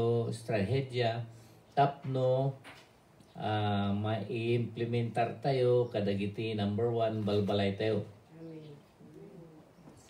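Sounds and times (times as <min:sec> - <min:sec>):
bird cooing: 0:08.3 - 0:10.0.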